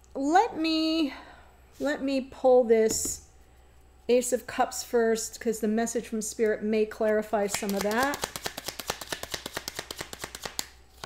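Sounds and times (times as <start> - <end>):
cards snapping: 7.5 - 10.8
cards being shuffled: 7.5 - 11.0.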